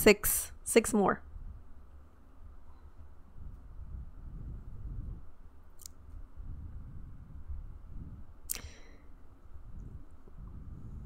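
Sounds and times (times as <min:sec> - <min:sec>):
low room rumble: 0:00.0 - 0:11.0
short clicks: 0:08.5 - 0:08.8.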